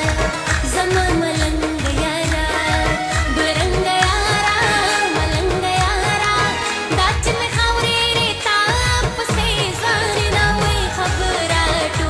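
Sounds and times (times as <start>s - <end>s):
woman singing into microphone: 0.0s - 12.0s
instrumental accompaniment: 8.7s - 12.0s
steady low drum beat: 8.9s - 12.0s.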